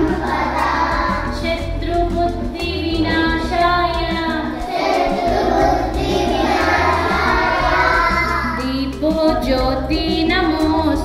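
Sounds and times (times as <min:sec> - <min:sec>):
children singing in unison: 0:00.0 - 0:01.4, 0:03.5 - 0:08.6.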